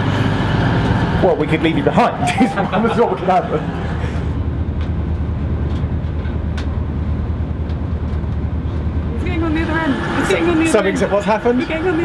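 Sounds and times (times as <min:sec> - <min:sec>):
diesel train engine hum: 0:00.0 - 0:12.0.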